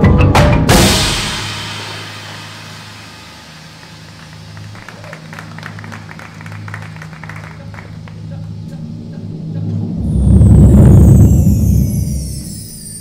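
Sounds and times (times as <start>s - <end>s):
drums and cymbals final hit: 0.0s - 5.6s.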